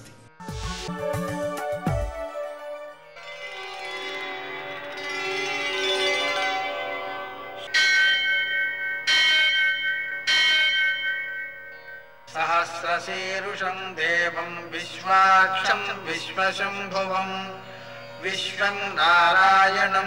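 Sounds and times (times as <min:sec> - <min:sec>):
drone: 0:03.0 - 0:20.0
bell ringing: 0:03.2 - 0:20.0
person chanting: 0:12.3 - 0:20.0.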